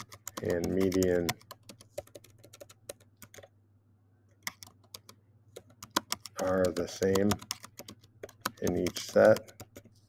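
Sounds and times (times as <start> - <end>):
typing on computer keyboard: 0.0 - 3.5, 4.4 - 9.9.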